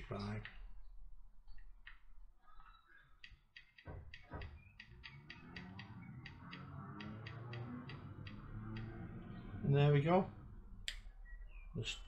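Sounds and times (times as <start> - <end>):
faint background music: 4.5 - 12.0.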